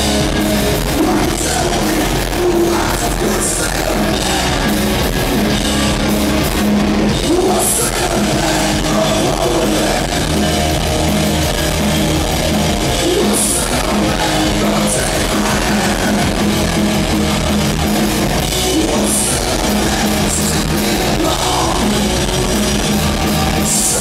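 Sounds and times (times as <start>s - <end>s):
punk rock band playing: 0.0s - 24.0s.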